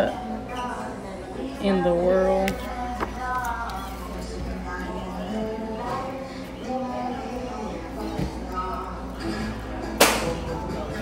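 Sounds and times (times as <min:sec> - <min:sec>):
background music: 0:01.2 - 0:11.0.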